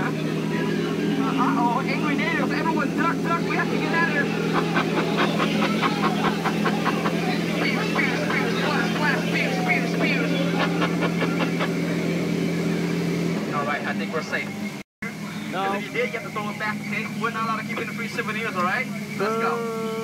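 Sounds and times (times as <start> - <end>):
boat motor humming: 0.0 - 20.0
voices: 0.0 - 20.0.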